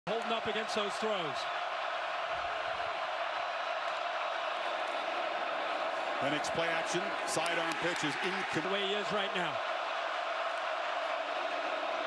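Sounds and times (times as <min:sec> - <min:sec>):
stadium crowd noise: 0:00.1 - 0:12.0.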